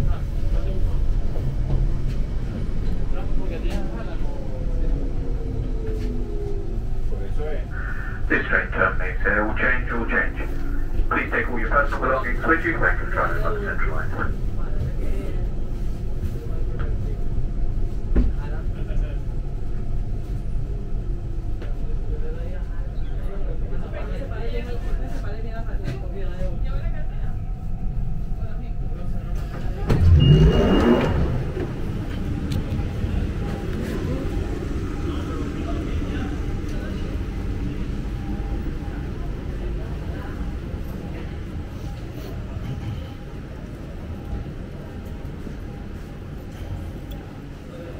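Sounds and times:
train rumbling inside carriage: 0:00.0 - 0:47.9.

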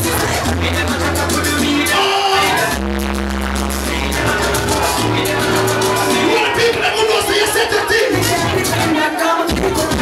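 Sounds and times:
shaker percussion: 0:00.0 - 0:02.8, 0:03.6 - 0:06.6
loud party dance music: 0:00.0 - 0:10.0.

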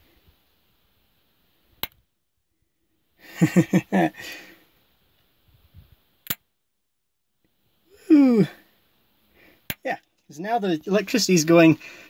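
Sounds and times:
sharp click: 0:01.8 - 0:02.0, 0:06.2 - 0:06.5.

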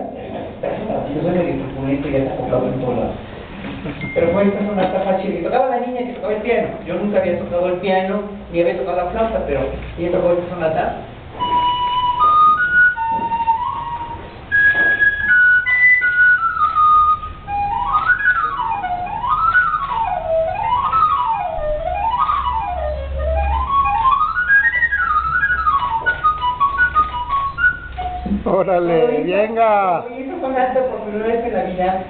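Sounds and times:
recorder melody: 0:11.3 - 0:30.0.

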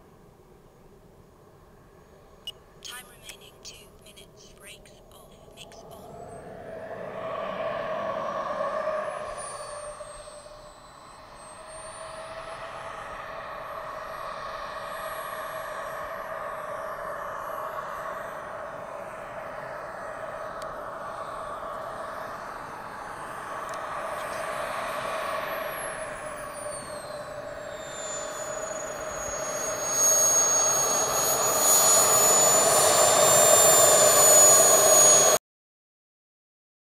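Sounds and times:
model jet turbine whine: 0:00.0 - 0:03.0, 0:05.9 - 0:35.4.

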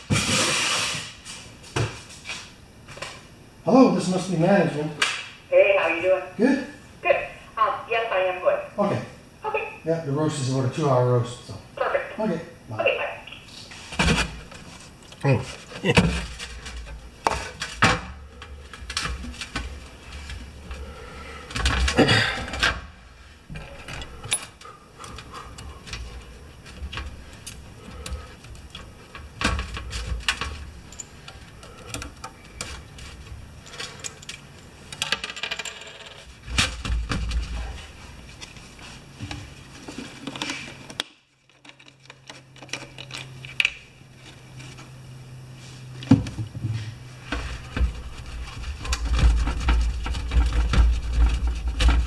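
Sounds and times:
steady low hum: 0:00.0 - 0:35.2, 0:36.1 - 0:52.0.

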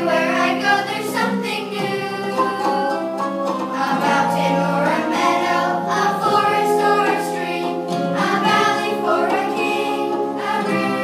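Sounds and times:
choir singing: 0:00.0 - 0:11.0
musical accompaniment: 0:00.0 - 0:11.0.

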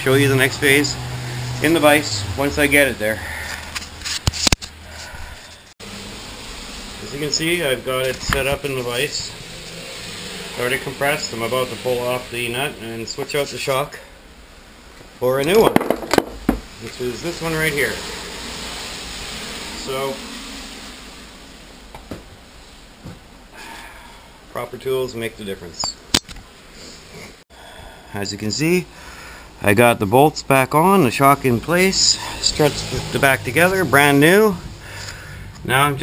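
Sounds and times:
faint garage background: 0:00.0 - 0:36.0
faint steady hiss: 0:05.8 - 0:36.0
tools knocking: 0:15.7 - 0:16.7.

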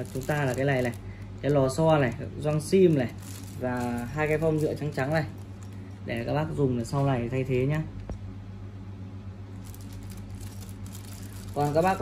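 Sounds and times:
plastic bag crinkling: 0:00.0 - 0:07.4, 0:09.5 - 0:12.0
steady low hum: 0:00.0 - 0:12.0.

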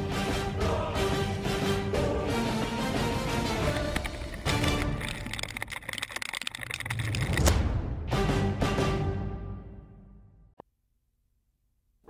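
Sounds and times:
theme music: 0:00.0 - 0:05.4, 0:07.3 - 0:10.4.

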